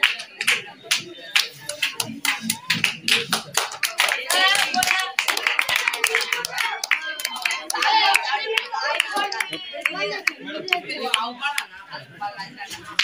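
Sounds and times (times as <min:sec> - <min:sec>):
small group clapping hands: 0:00.0 - 0:11.8
people talking: 0:00.0 - 0:13.0.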